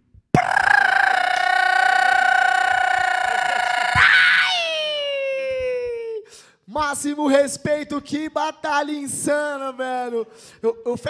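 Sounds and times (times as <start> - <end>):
man screaming into a microphone: 0.4 - 6.3.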